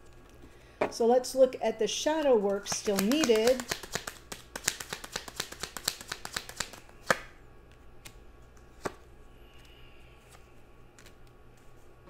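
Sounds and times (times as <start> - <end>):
cards being shuffled: 2.1 - 9.0, 10.2 - 11.9
card snap: 2.5 - 7.3.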